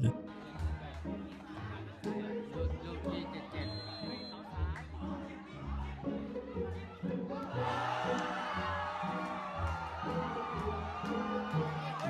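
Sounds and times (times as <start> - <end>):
people shouting and cheering: 0.0 - 12.0.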